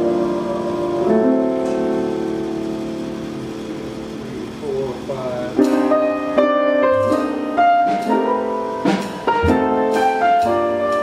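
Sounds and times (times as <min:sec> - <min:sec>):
jazz quartet playing: 0:00.0 - 0:11.0
piano chord: 0:00.0 - 0:11.0.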